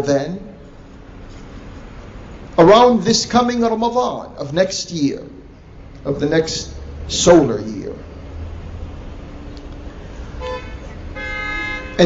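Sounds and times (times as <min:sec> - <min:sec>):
vehicle horn honk: 0:10.4 - 0:12.0.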